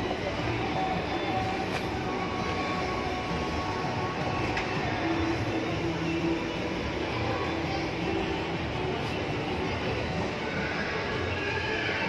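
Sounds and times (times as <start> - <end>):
echoing shopping mall crowd din: 0.0 - 12.0.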